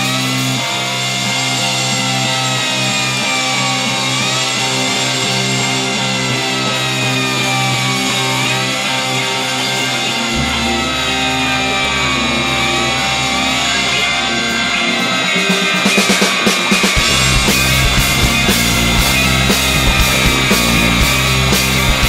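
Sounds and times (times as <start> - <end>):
instrumental rock music: 0.0 - 22.0
deep low note: 10.3 - 14.9, 17.0 - 22.0.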